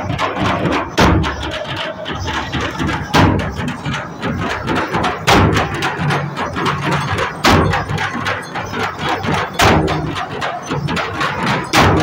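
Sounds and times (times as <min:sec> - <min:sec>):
drums beaten in fast rhythm: 0:00.0 - 0:12.0.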